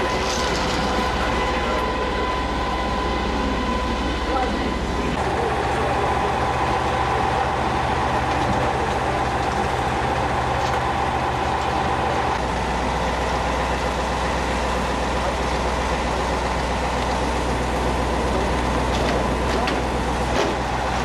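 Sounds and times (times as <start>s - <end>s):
machine drone with whine: 0.0s - 21.0s.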